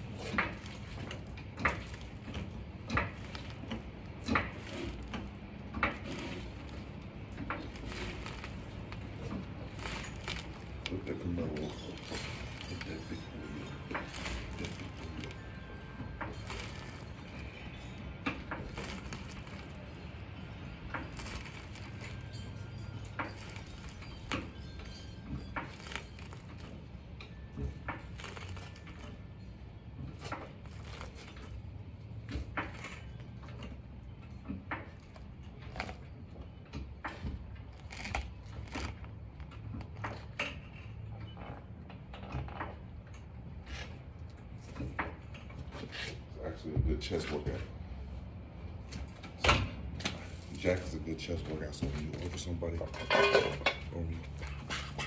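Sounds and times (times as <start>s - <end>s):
low steady hum: 0.0s - 55.0s.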